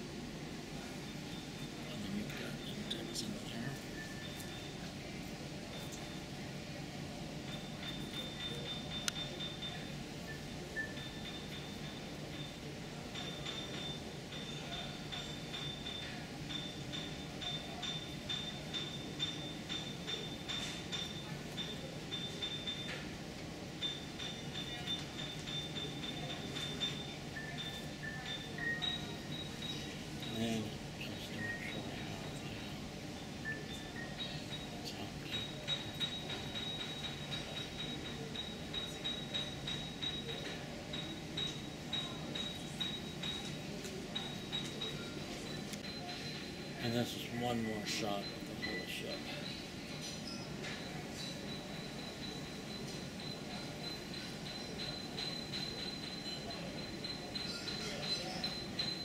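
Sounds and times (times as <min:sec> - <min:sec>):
background chatter: 0:00.0 - 0:59.0.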